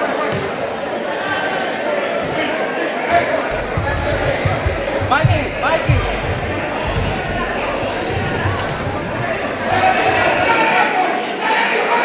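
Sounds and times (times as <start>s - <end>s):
crowd chatter echoing: 0.0s - 12.0s
ball thudding on wooden floor: 3.5s - 10.5s.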